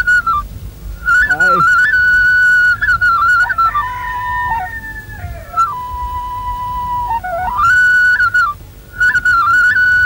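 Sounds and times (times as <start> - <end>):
slow flute melody: 1.0 - 10.0.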